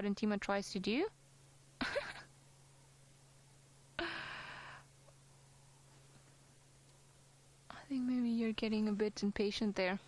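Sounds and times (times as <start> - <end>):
faint low hum: 0.0 - 10.0
person sighing: 4.0 - 4.9.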